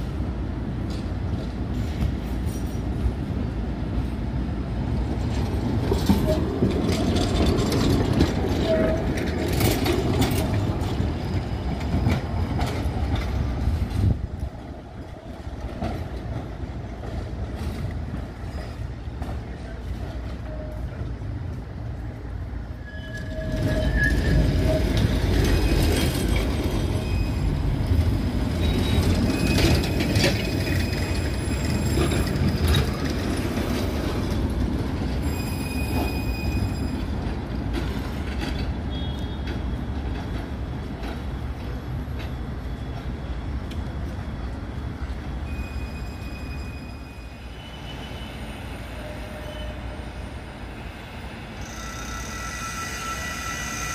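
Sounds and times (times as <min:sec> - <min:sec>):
tram wheels rumbling on track: 0:00.0 - 0:53.9
tram wheel squeals: 0:05.3 - 0:14.2, 0:15.1 - 0:53.9.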